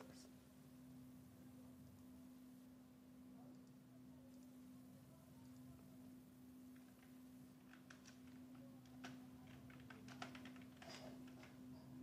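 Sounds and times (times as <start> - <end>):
low electrical hum: 0.0 - 12.0
keyboard keys clicking: 7.7 - 11.4.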